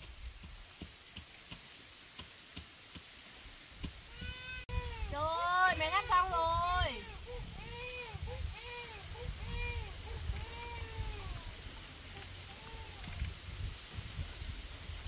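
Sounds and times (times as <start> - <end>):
faint light ticks: 12.1 - 13.4.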